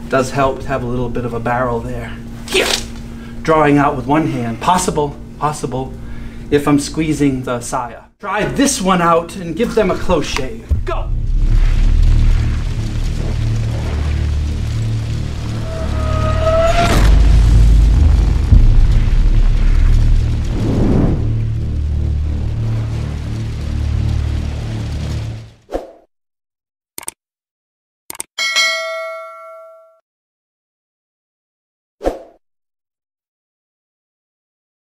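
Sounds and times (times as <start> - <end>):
swelling sweep: 10.7 - 25.4
loud deep outro music: 10.7 - 25.6
short mouse clicks: 27.0 - 27.2
bell-like ding: 28.4 - 30.0.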